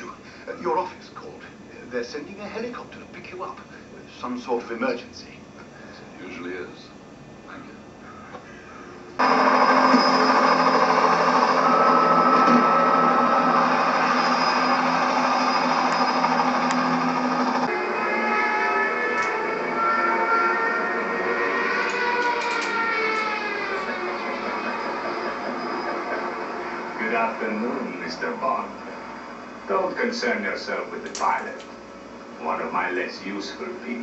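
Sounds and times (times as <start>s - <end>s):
held tones sliding downward: 9.2s - 28.0s
helicopter engine noise: 9.2s - 33.0s.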